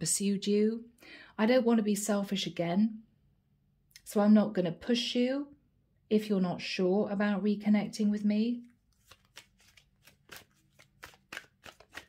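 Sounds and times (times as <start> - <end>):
cards being shuffled: 8.6 - 12.0.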